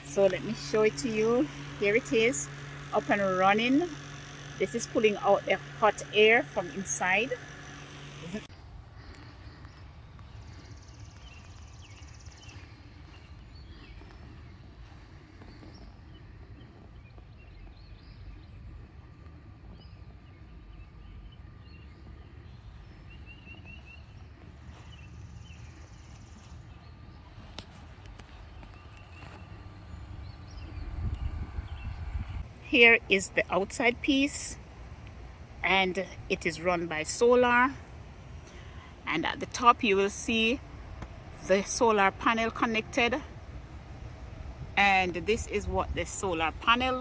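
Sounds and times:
bird chirps: 9.1 - 32.4.

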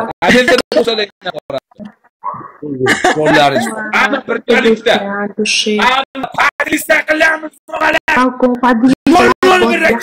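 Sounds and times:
people talking on video chat: 0.0 - 10.0.

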